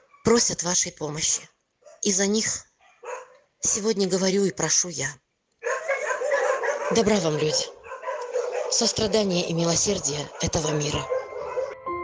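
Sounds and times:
dog whining: 5.6s - 11.8s.

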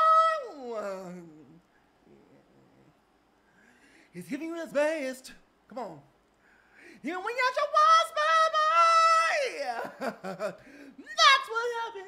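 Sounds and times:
man singing falling glide: 0.0s - 2.9s, 7.0s - 12.0s.

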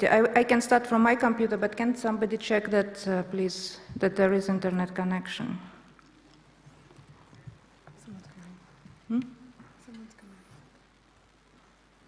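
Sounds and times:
faint clicks and knocks: 5.9s - 9.8s.

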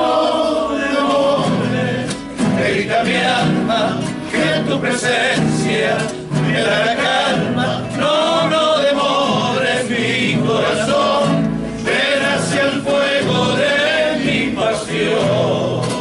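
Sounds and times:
men singing together: 0.0s - 16.0s
strummed acoustic guitars: 0.0s - 16.0s.

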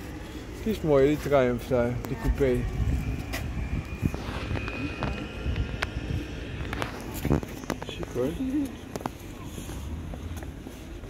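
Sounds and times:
camera handling rumble: 6.6s - 7.9s.

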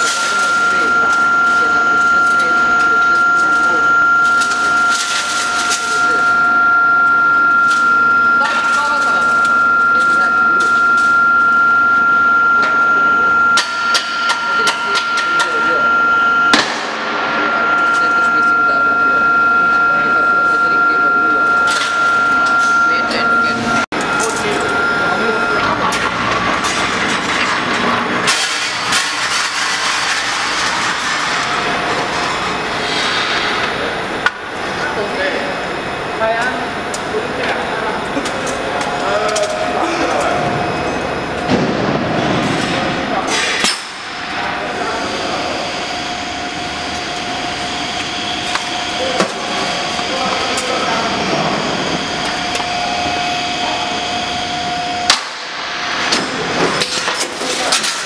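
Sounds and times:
people talking: 0.0s - 6.7s, 7.6s - 28.7s, 33.4s - 43.7s, 44.3s - 55.1s, 55.9s - 58.0s
welding machine whine: 0.0s - 58.0s.

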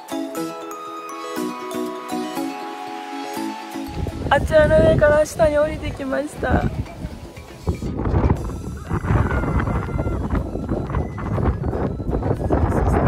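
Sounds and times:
strong gusting wind on microphone: 3.8s - 13.0s.

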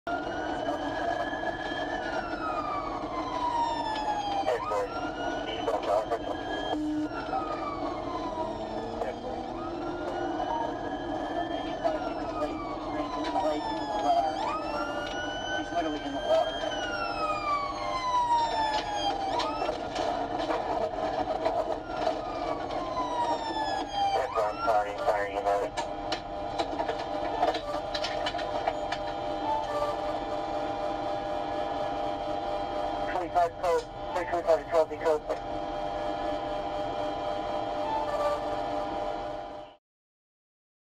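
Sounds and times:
police siren wailing: 0.1s - 39.8s
siren yelp sweeps: 0.1s - 39.8s.

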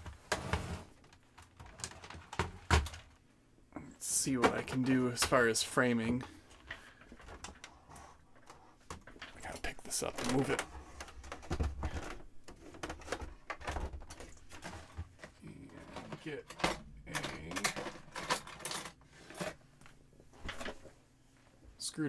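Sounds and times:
computer being handled: 1.0s - 3.2s, 8.4s - 19.6s.

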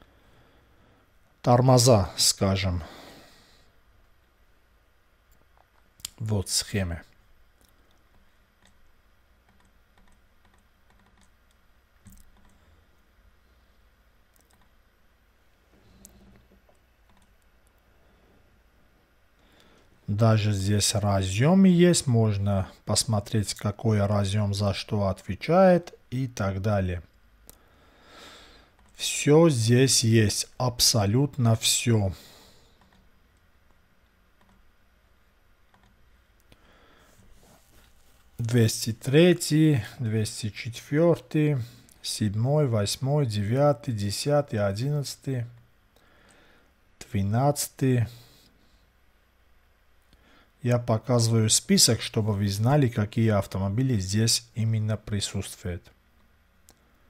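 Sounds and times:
computer mouse and key clicks: 7.6s - 12.6s, 14.3s - 14.8s, 16.0s - 17.8s, 28.8s - 29.0s, 32.8s - 33.8s, 34.4s - 34.7s, 35.6s - 36.5s
faint computer mouse clicks: 32.8s - 33.1s, 34.4s - 34.6s, 35.7s - 36.6s.

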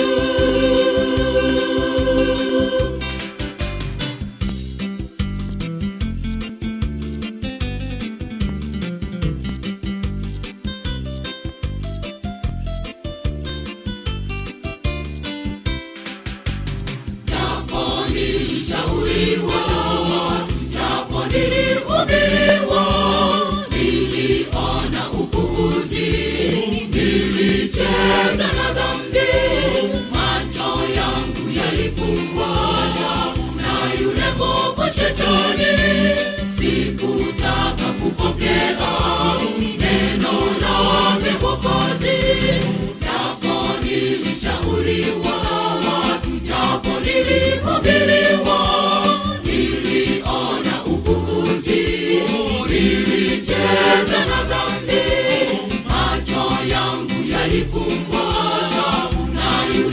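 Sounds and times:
gospel choir singing: 0.0s - 3.5s, 17.3s - 59.9s
instrumental backing with bass beat: 0.0s - 59.9s.

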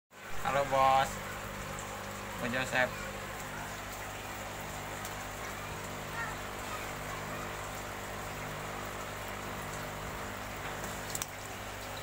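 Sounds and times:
water splashing in a tub: 0.2s - 12.0s.

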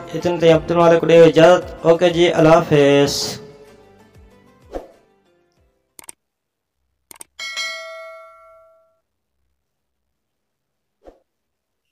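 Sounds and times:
bright bell ding: 7.4s - 9.0s.

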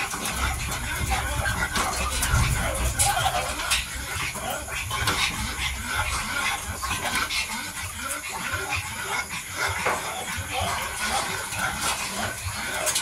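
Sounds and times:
puppies chewing and smacking: 0.0s - 13.0s.

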